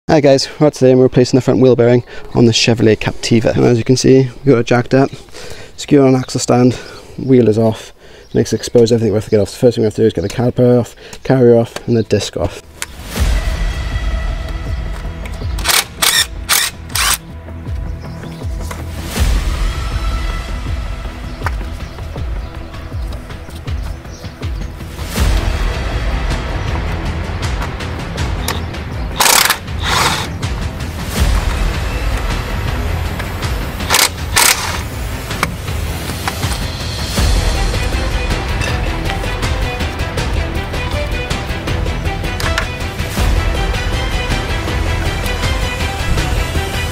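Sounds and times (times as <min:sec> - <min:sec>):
cordless power wrench bursts: 0:15.6 - 0:17.2, 0:29.2 - 0:30.3, 0:33.9 - 0:34.8
background music with bass beat: 0:17.3 - 0:46.9.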